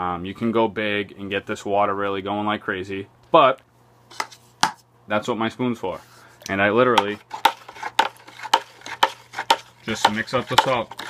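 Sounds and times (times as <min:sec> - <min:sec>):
spoon knocking plastic bucket: 0:07.0 - 0:11.0.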